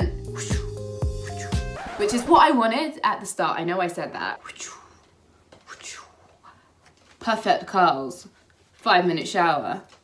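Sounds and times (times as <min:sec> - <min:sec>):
woman whispering: 0:04.3 - 0:05.0, 0:05.6 - 0:06.4.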